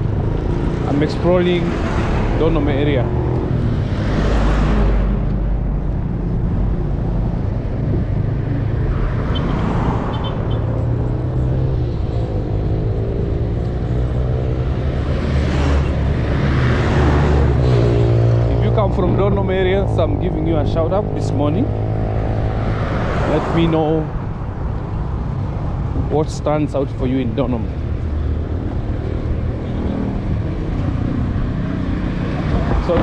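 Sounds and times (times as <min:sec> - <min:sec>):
steady low traffic rumble: 0:00.0 - 0:33.0
vehicles passing: 0:00.0 - 0:33.0.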